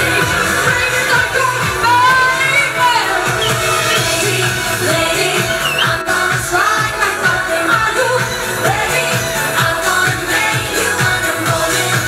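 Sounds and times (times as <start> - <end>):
pop dance backing track: 0.0 - 12.0
woman singing into a microphone: 0.0 - 12.0.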